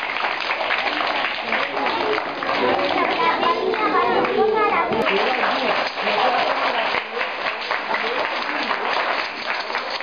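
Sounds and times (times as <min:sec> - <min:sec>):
children chattering: 0:00.5 - 0:10.0.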